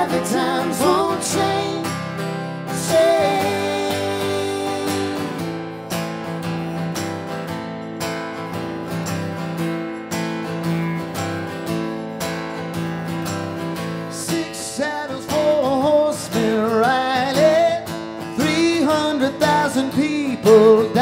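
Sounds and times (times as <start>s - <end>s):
man singing: 0.0s - 5.4s, 14.1s - 21.0s
acoustic guitar strumming: 0.0s - 21.0s.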